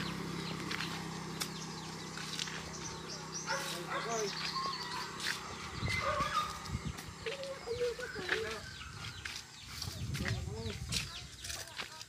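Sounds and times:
dog barking: 3.4s - 5.1s, 5.9s - 6.6s.

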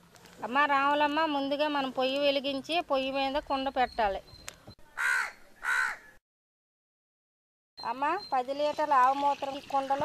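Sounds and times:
crow cawing: 5.0s - 6.2s.

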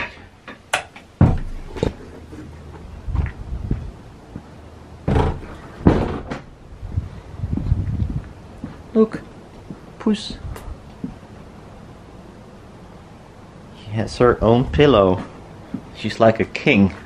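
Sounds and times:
door opening and closing: 0.7s - 2.0s, 5.0s - 6.6s.

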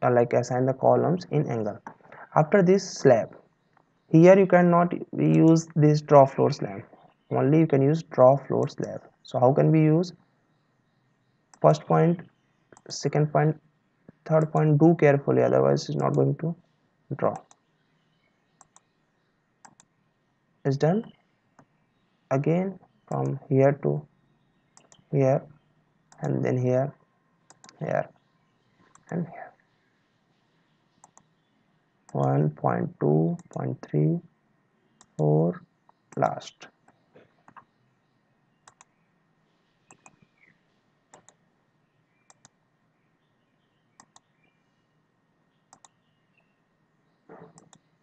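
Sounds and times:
computer mouse clicks: 17.3s - 17.7s, 18.6s - 18.9s, 19.6s - 19.9s, 24.8s - 25.1s, 27.5s - 27.8s, 28.9s - 29.2s, 31.0s - 31.3s, 33.4s - 33.6s, 38.6s - 38.9s, 39.9s - 40.3s, 41.1s - 41.4s, 42.3s - 42.6s, 44.0s - 44.3s, 45.7s - 46.0s, 47.3s - 47.9s.

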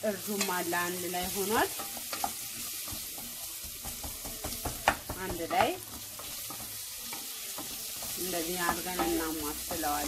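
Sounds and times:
vegetables sizzling in pot: 0.0s - 10.0s.

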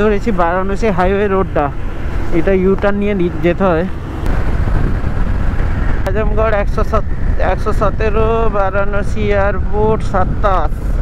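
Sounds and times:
motorcycle wind and road noise: 0.0s - 11.0s
rider's voice: 6.1s - 11.0s.

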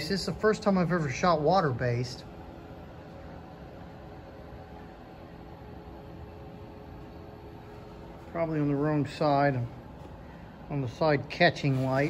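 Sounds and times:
room tone hum and hiss: 0.0s - 12.0s.

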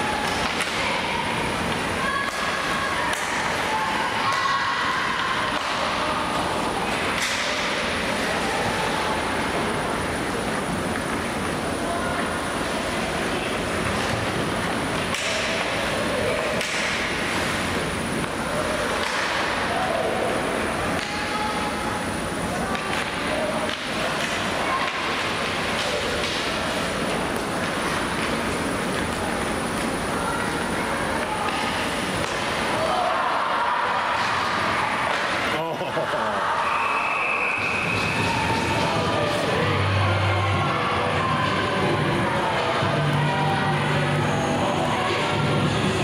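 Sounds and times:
fans cheering: 0.0s - 13.9s, 14.6s - 46.0s
crowd and player voices: 0.0s - 46.0s
short high whistle: 36.6s - 38.2s.

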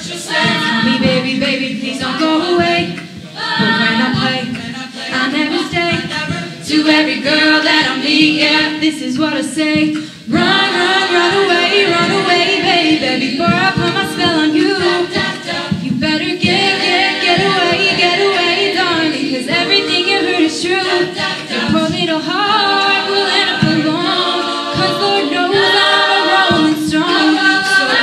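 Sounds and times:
choir of backing singers: 0.0s - 28.0s
female lead singer: 0.0s - 28.0s.

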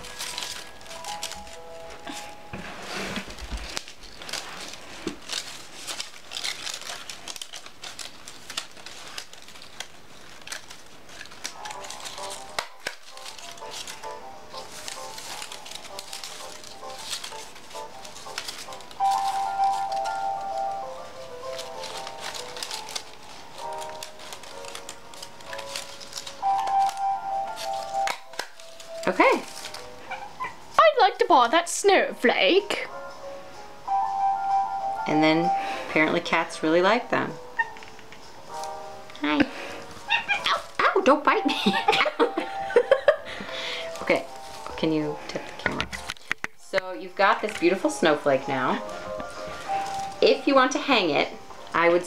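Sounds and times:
simple background melody: 0.0s - 9.5s, 10.4s - 52.0s
paper rustling and crinkling: 0.0s - 31.7s, 37.6s - 46.6s, 47.2s - 52.0s.

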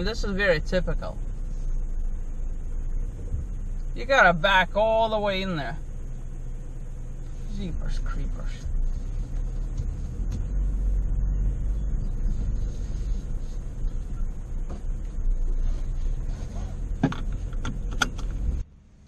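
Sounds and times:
truck rumbling over rough ground: 0.0s - 19.0s
knocks and rattles: 16.9s - 18.6s.

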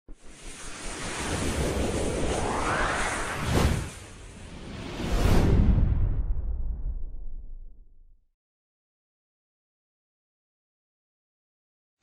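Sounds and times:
rushing whoosh sound effect: 0.3s - 6.5s.

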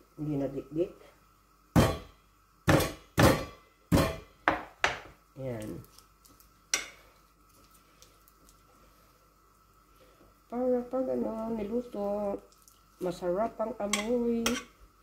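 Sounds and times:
knife chopping on cutting board: 2.7s - 5.1s.

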